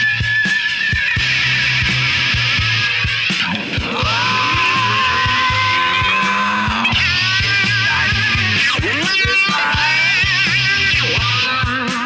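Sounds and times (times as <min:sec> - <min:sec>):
drum beats: 0:00.0 - 0:12.0
bass line: 0:01.1 - 0:12.0
electric guitar holding long note: 0:03.6 - 0:11.8.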